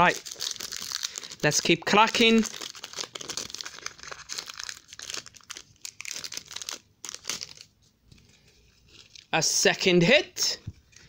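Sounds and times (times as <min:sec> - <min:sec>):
foil wrapper tearing and crinkling: 0:00.0 - 0:07.7.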